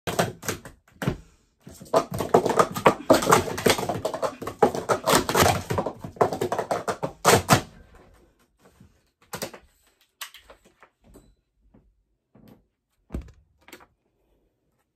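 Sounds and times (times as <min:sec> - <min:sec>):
plastic cups clattering: 0:00.1 - 0:08.0.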